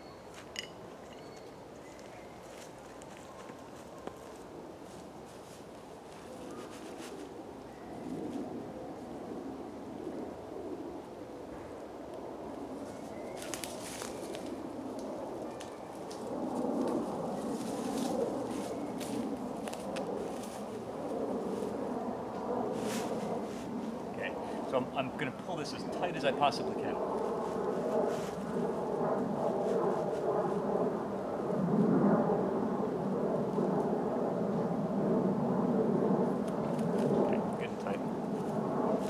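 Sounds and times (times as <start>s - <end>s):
footsteps on dry leaves: 1.8s - 7.3s, 12.9s - 14.6s, 17.0s - 21.7s, 22.7s - 23.9s, 27.2s - 28.7s.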